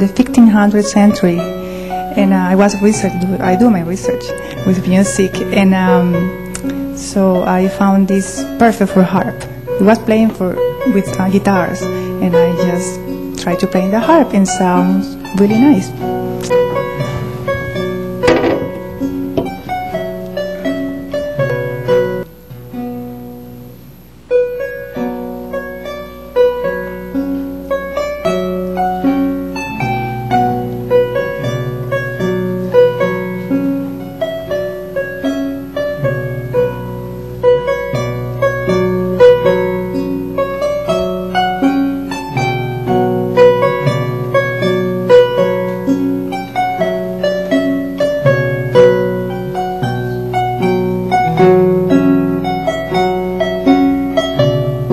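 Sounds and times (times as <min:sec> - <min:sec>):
harp plucked notes: 0:00.0 - 0:54.9.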